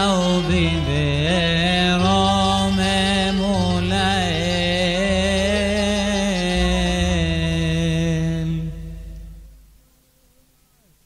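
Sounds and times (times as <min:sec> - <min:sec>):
cantor singing long note: 0:00.0 - 0:10.0
low held accompaniment tone: 0:00.0 - 0:10.8.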